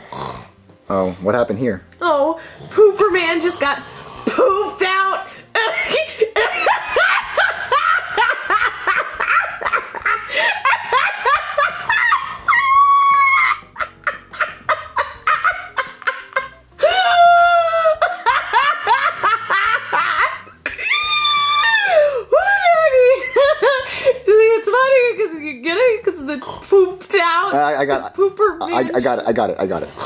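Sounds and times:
person laughing hard: 5.6s - 22.2s
high-pitched squealing cries: 12.2s - 13.8s, 20.7s - 22.2s.

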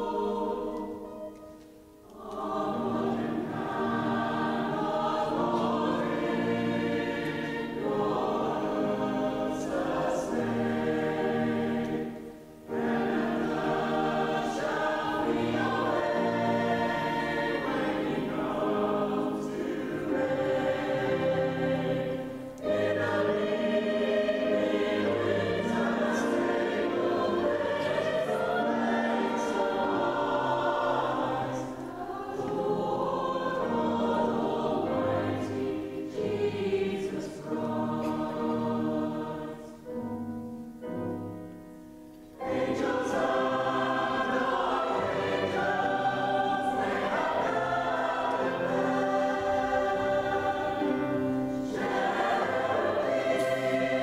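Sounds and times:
mixed choir singing: 0.0s - 41.7s, 42.3s - 54.0s.

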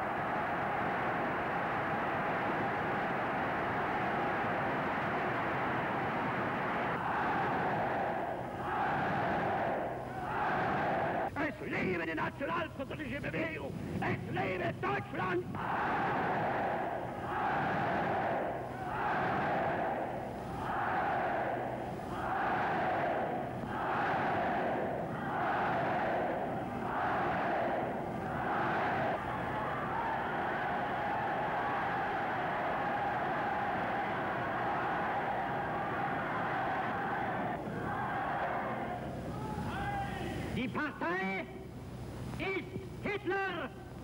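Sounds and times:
crowd shouting in unison: 0.0s - 11.3s, 15.6s - 40.1s
crowd cheering roar: 0.0s - 11.4s, 15.5s - 40.4s.

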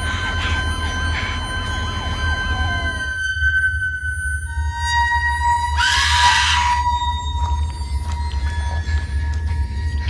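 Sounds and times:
heart monitor flatline tone: 0.0s - 10.0s
low rumbling drone: 0.0s - 10.0s.

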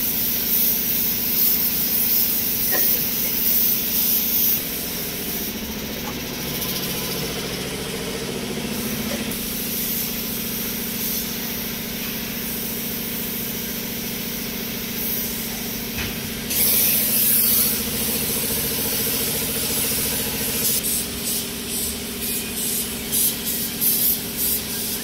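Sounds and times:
air compressor humming: 0.0s - 25.0s
paint spray gun hissing: 0.0s - 25.0s.

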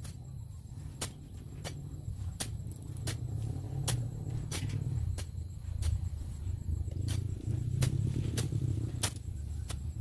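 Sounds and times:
blade swishing through grass: 0.0s - 10.0s
steady low rumble: 0.0s - 10.0s.

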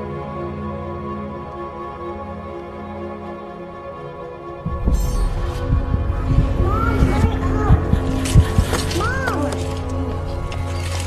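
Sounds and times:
low drone: 0.0s - 11.0s
deep thumps: 4.7s - 8.8s.

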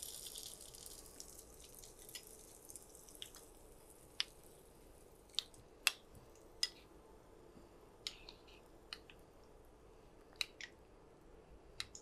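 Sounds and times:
faint frying sizzle: 0.0s - 5.6s.

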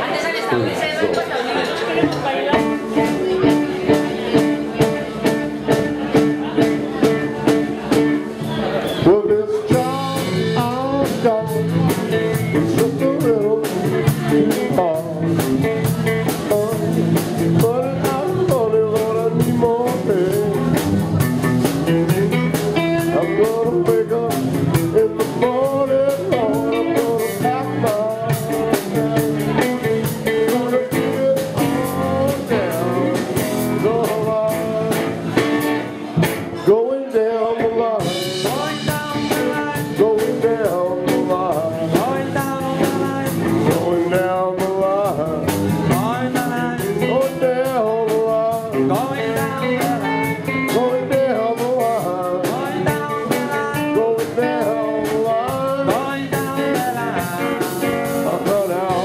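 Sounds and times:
electric guitar lead: 0.0s - 59.0s
drum kit: 1.1s - 59.0s.

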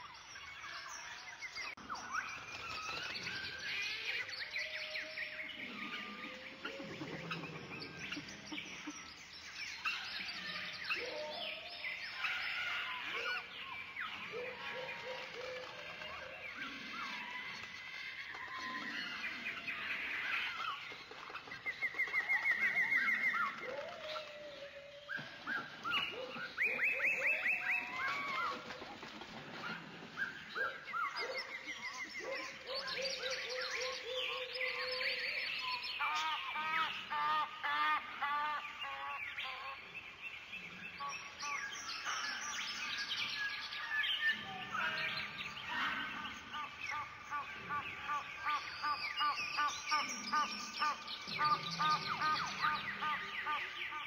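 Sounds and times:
birds chirping and trilling: 0.0s - 54.0s.

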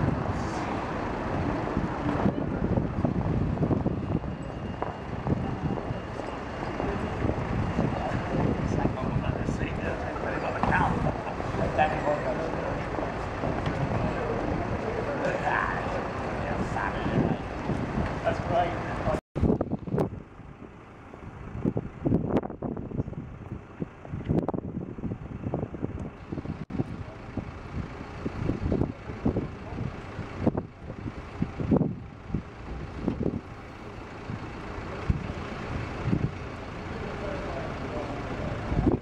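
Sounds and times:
low street rumble: 0.0s - 39.0s
distant indistinct voices: 4.0s - 19.2s, 33.6s - 39.0s.

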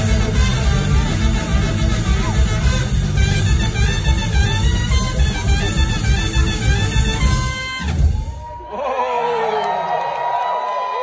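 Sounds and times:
trumpet playing held notes: 0.0s - 8.2s
band bass and drums: 0.0s - 8.6s.

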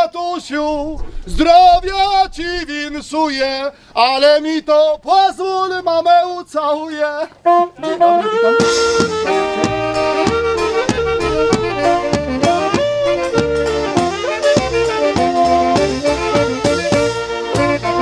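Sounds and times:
man singing: 0.0s - 13.4s
folk band playing lively tune: 7.4s - 18.0s.

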